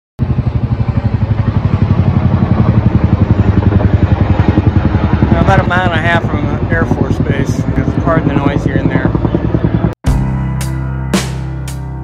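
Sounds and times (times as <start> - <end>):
helicopter rotor blades beating: 0.2 - 12.0.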